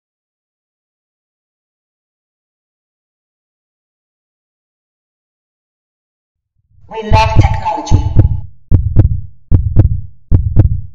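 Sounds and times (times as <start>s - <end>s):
heartbeat thumps: 7.0s - 10.9s.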